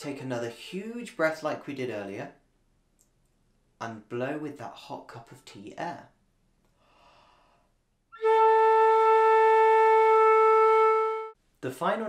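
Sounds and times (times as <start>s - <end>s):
faint breath in: 6.7s - 7.8s
flute playing held note: 8.2s - 11.4s.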